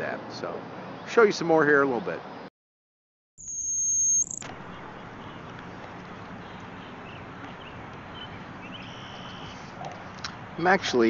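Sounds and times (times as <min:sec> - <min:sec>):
outdoor background noise: 0:00.0 - 0:02.5, 0:03.4 - 0:11.0
loud high steady tone: 0:03.4 - 0:04.8
faint bird chirps: 0:03.4 - 0:05.5.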